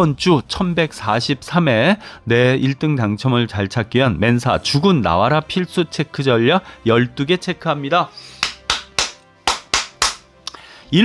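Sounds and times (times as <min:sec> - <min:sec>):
faint background music: 0:00.0 - 0:11.0
sharp percussive hits: 0:08.4 - 0:10.2.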